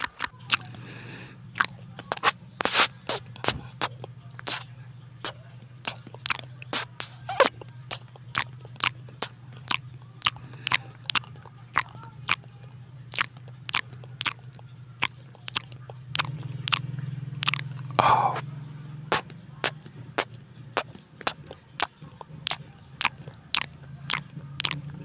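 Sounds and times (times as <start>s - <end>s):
chewing food: 0.0s - 25.0s
sharp wet click: 1.6s - 12.5s, 19.1s - 25.0s.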